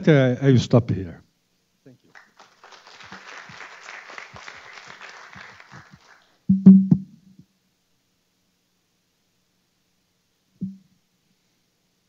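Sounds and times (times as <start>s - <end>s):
audience applauding: 2.1s - 6.4s.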